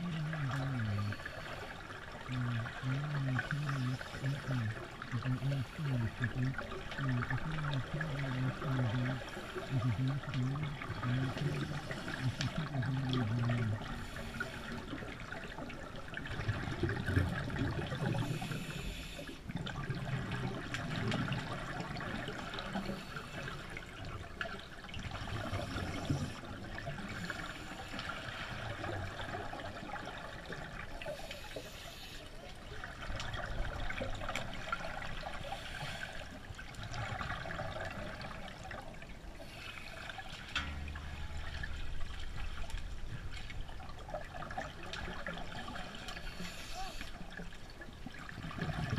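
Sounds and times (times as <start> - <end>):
steady watery hiss: 0.0 - 43.5, 44.5 - 48.9
scuba regulator bubbles underwater: 0.0 - 48.9.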